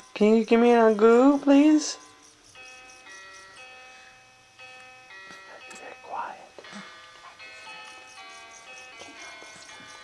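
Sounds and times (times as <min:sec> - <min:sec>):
crib mobile electronic lullaby: 0:00.0 - 0:10.0.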